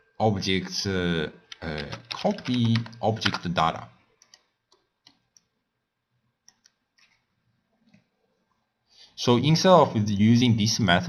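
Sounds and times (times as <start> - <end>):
computer mouse clicks: 1.5 - 3.5, 4.2 - 5.5, 6.4 - 8.1.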